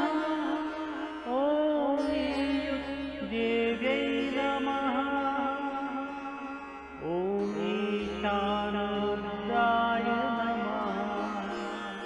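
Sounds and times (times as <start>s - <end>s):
mantra chanting in long notes: 7.0s - 12.0s.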